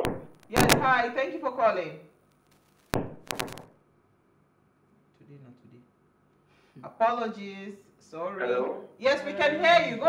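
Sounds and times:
sharp clicks: 0:02.4 - 0:03.7.

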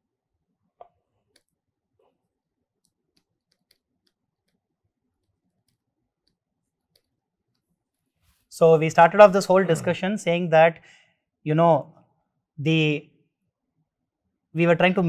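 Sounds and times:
stylus tapping on pen tablet: 0:02.8 - 0:04.6.

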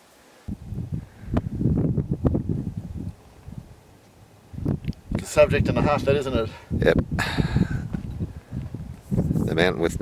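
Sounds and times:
wind buffeting microphone: 0:00.5 - 0:10.0.

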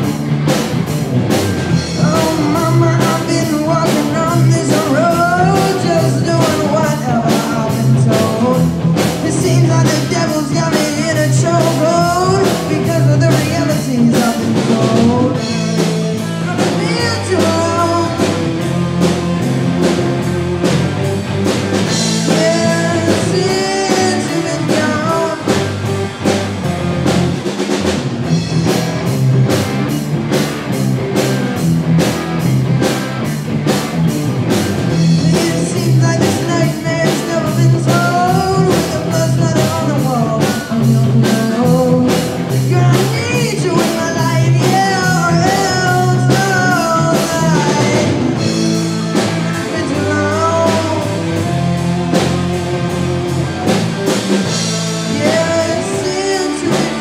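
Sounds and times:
bass guitar: 0:00.0 - 0:57.0
drum kit beat: 0:00.0 - 0:57.0
electric guitars: 0:00.0 - 0:57.0
lead vocal singing: 0:01.6 - 0:20.3, 0:20.9 - 0:27.7, 0:34.8 - 0:57.0.

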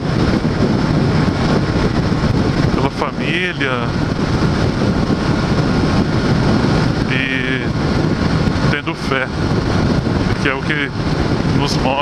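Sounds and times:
motorcycle engine cruising: 0:00.0 - 0:12.0
wind noise on microphone: 0:00.0 - 0:12.0.

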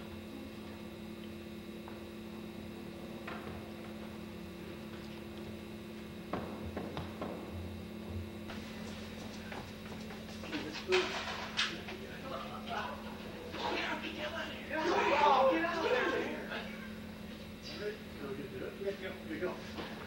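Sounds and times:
electrical hum: 0:00.0 - 0:20.0.

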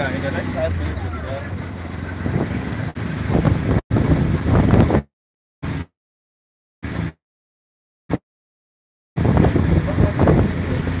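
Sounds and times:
wind and road noise: 0:00.0 - 0:05.9, 0:06.8 - 0:07.2, 0:09.2 - 0:11.0.

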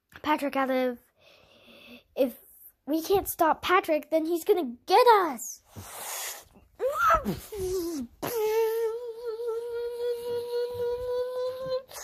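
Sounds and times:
child humming: 0:06.8 - 0:12.0.

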